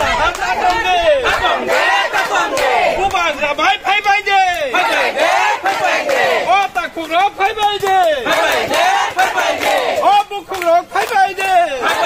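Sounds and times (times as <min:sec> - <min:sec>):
crowd shouting slogans: 0:00.0 - 0:03.6, 0:04.3 - 0:06.7, 0:07.6 - 0:10.2, 0:11.0 - 0:12.0.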